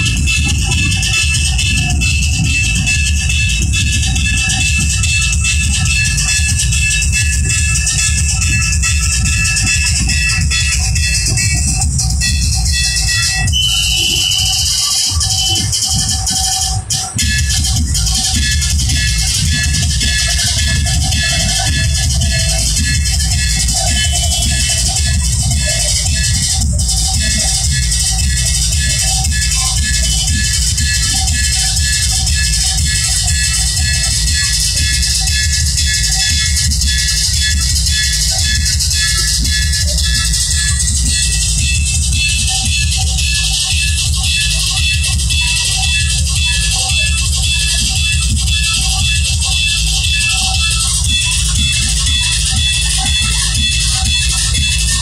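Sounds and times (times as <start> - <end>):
crowd voices: 0.0 - 55.0
drums played loudly: 0.0 - 55.0.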